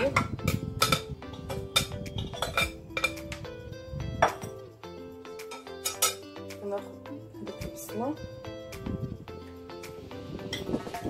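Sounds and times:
bowl knocking on metal pot: 0.0s - 3.4s, 4.2s - 4.5s
background music: 0.0s - 11.0s.

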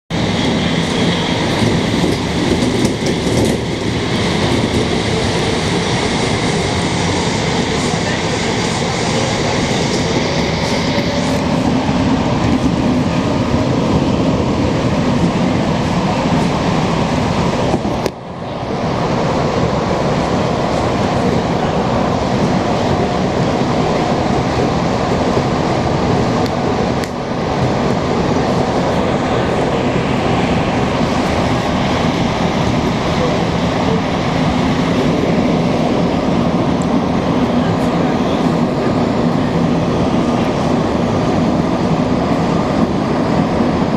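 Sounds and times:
subway car rumbling in tunnel: 0.0s - 43.9s.

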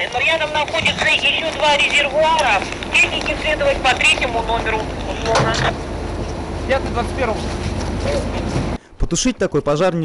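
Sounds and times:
indistinct voices: 0.0s - 5.8s
fire engine rumbling: 0.0s - 9.0s.

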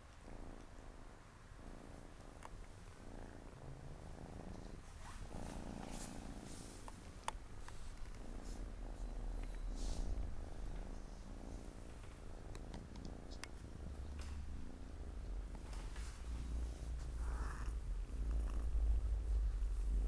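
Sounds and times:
cat purring: 0.0s - 20.0s.

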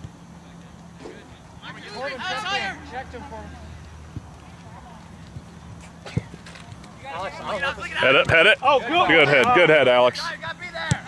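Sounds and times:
faint distant voices: 0.0s - 11.0s.

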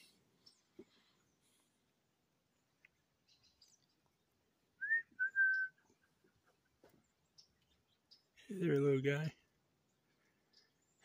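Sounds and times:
faint high bird chirps: 0.0s - 1.7s, 2.5s - 11.0s
person whistling notes: 4.8s - 5.8s.

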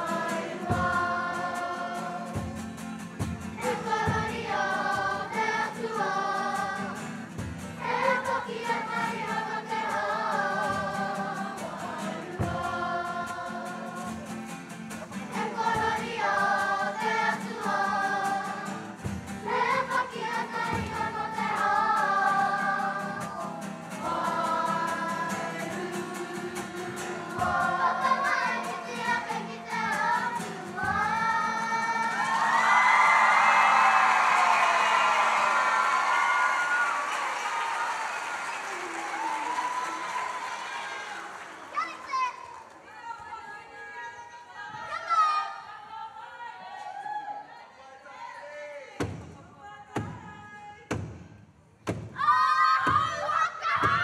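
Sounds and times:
children singing together: 0.0s - 2.8s, 3.4s - 14.4s, 15.1s - 33.0s
guitar accompaniment: 0.0s - 36.8s
audience cheering and applause: 31.9s - 43.2s.

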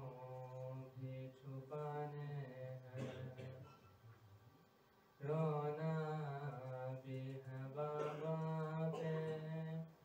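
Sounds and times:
man chanting a lament: 5.2s - 9.9s.

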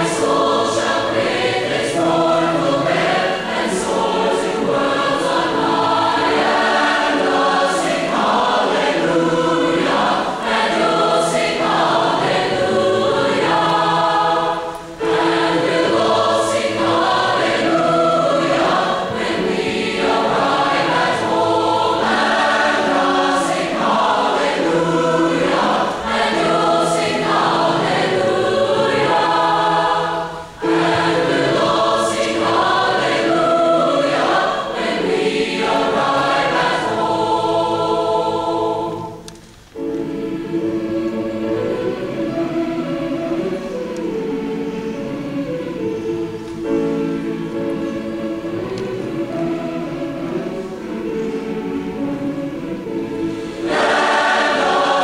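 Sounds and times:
choir singing in harmony: 0.0s - 55.0s.

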